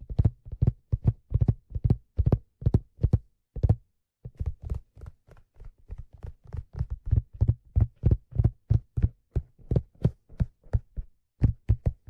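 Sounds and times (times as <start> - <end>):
fingers tapping on leather hat: 0.0 - 12.0.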